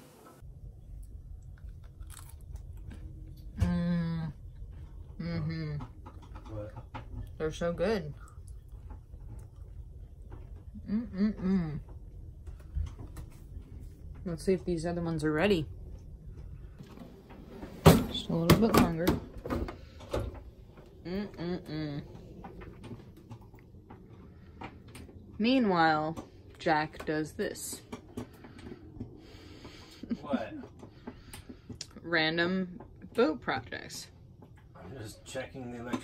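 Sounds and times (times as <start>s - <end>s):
crisp crunching while chewing: 1.4s - 3.0s
person humming mmm: 3.6s - 4.4s, 10.7s - 11.9s, 21.0s - 22.2s.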